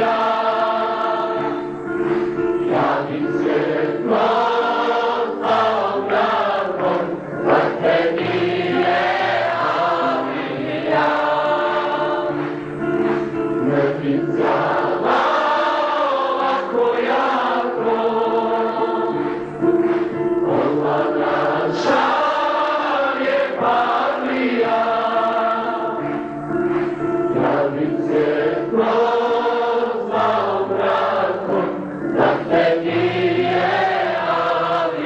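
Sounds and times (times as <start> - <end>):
choir singing slow melody: 0.0 - 35.0.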